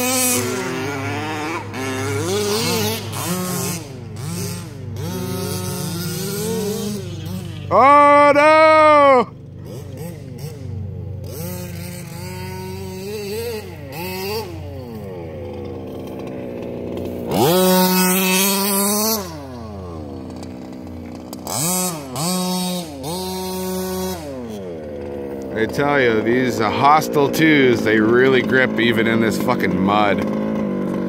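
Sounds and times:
small two-stroke engine revving: 0:00.0 - 0:31.0.

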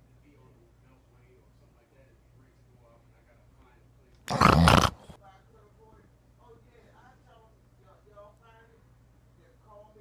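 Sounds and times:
man's rough vocal outburst: 0:04.3 - 0:05.2.

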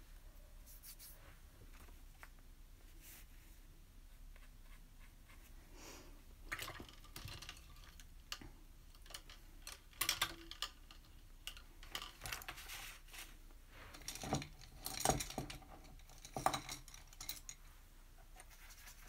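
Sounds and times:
paint supplies clicking and rustling: 0:06.5 - 0:17.6.

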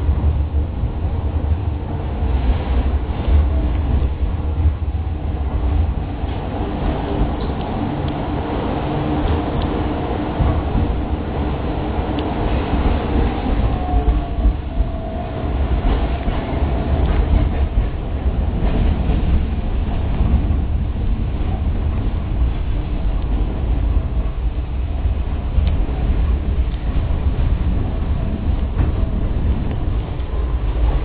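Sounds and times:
tram wheels rumbling on track: 0:00.0 - 0:31.0.

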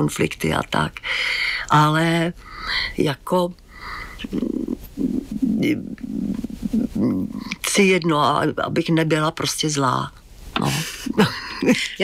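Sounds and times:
woman murmuring speech: 0:04.2 - 0:07.6.

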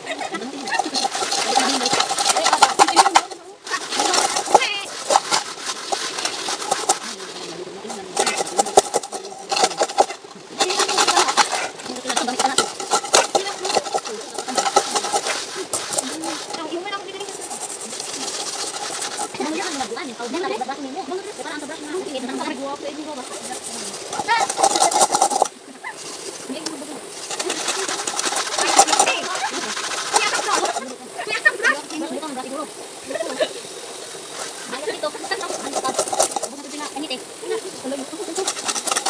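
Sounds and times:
metal pots scoured with sand: 0:00.0 - 0:39.0
voices chatting: 0:00.0 - 0:39.0.

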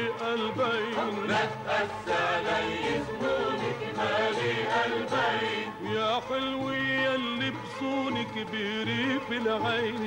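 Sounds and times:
musical accompaniment: 0:00.0 - 0:10.0
chorus of voices singing: 0:00.1 - 0:06.1.

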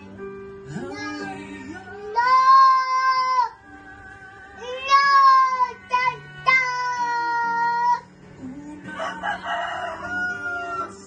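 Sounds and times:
toddler boy singing: 0:00.7 - 0:03.7, 0:04.6 - 0:08.1.

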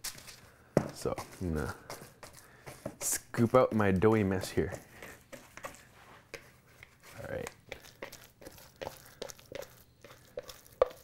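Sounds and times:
hand scooping sticky dough: 0:00.0 - 0:11.0.

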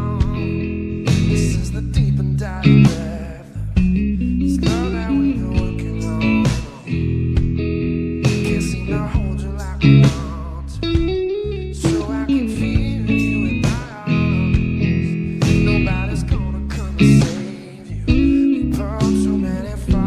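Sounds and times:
bass line: 0:00.0 - 0:20.0
drums: 0:00.0 - 0:20.0
electric guitar lead lines: 0:00.0 - 0:20.0.

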